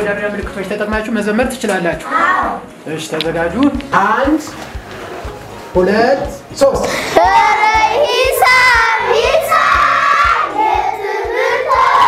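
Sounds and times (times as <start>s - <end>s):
children singing in unison: 7.2s - 12.0s.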